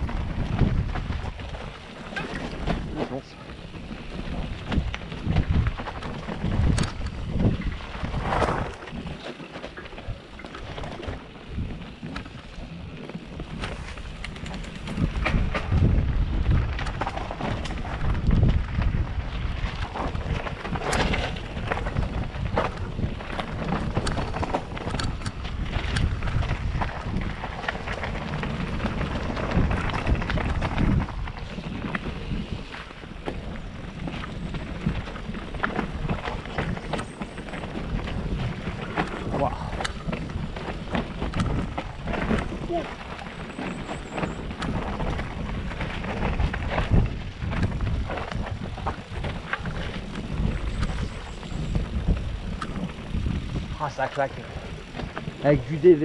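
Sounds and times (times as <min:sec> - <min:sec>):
wind rushing over microphone: 0:00.0 - 0:09.3, 0:10.0 - 0:56.0
bike rattling and knocking: 0:00.0 - 0:56.0
tyres rolling over dirt: 0:00.0 - 0:56.0.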